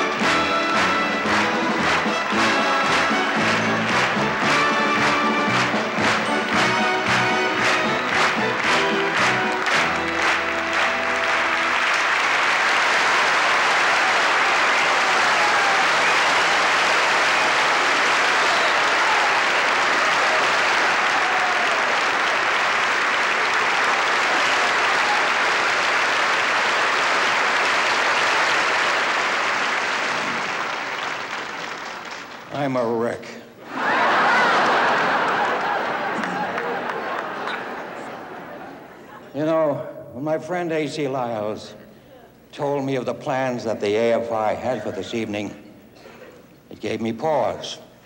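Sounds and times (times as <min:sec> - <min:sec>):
music ending: 0:00.0 - 0:12.0
audience applause: 0:00.0 - 0:32.6, 0:33.7 - 0:39.3.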